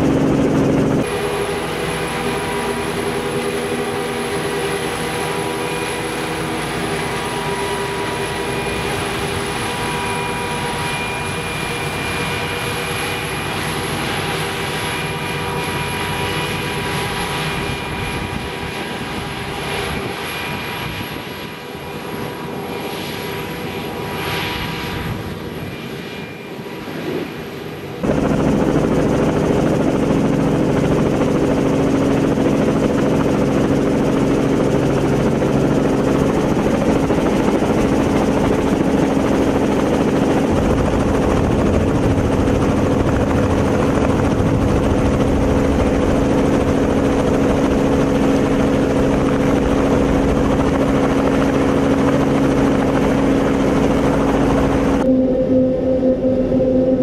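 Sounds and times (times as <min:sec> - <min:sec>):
forage harvester whine: 0:00.7 - 0:19.2, 0:53.6 - 0:57.0
engine drone with low hum: 0:52.0 - 0:57.0.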